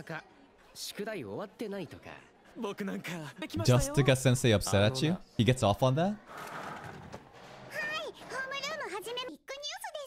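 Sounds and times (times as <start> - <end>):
high-pitched female voice speaking: 7.7 - 10.0.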